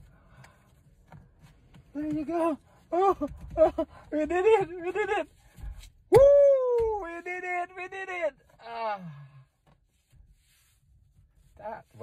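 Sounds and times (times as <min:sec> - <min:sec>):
hands rubbing steering wheel cover: 0:00.0 - 0:07.6, 0:09.6 - 0:12.0.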